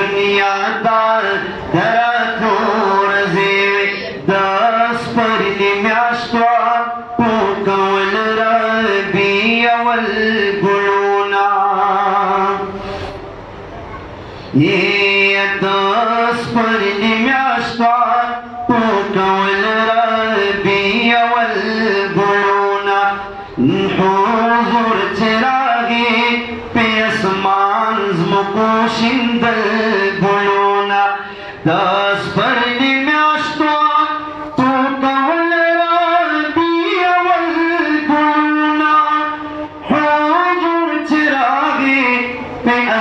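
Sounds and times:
man chanting: 0.0 - 13.0, 14.5 - 43.0
man singing devotional song: 0.0 - 13.2, 14.5 - 43.0.

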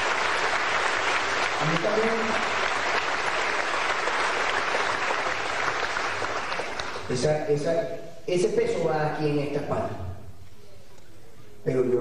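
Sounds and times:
audience applause: 0.0 - 7.1.

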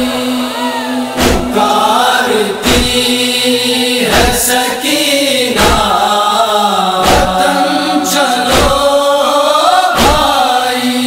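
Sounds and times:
man chanting a lament: 0.0 - 11.0
deep chest-beating thump: 1.2 - 1.6, 2.6 - 3.0, 5.6 - 5.9, 7.0 - 7.4, 8.5 - 8.9, 10.0 - 10.3.

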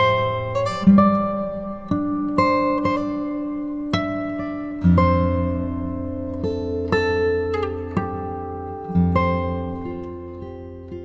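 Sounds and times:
plucked guitar notes: 0.0 - 11.0.

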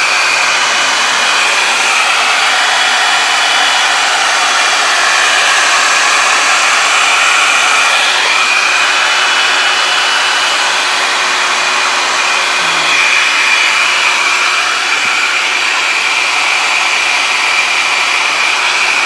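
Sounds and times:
hair dryer running: 0.0 - 19.0.

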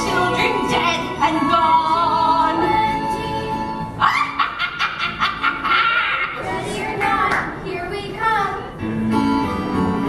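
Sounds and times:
high wailing voice: 4.0 - 6.8.

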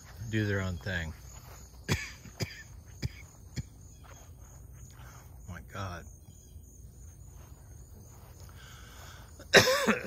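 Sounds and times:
faint outdoor background: 0.0 - 10.0
man coughing loudly: 1.8 - 4.0, 9.4 - 10.0.

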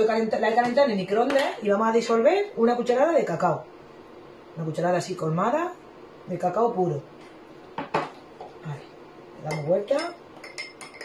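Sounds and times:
teaspoon clinking against glass: 9.5 - 11.0.

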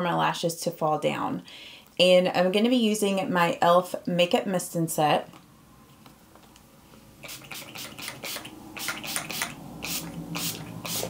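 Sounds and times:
spray bottle short sprays: 7.2 - 11.0.

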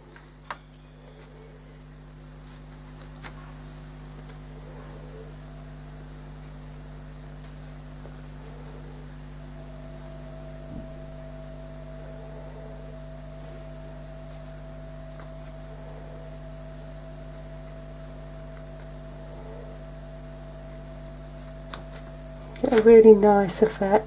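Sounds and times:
steady electrical hum: 0.0 - 24.0.

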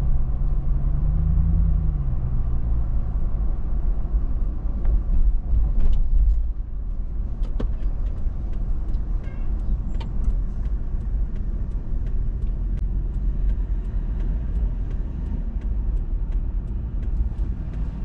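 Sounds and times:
car engine and road noise: 0.0 - 18.0.

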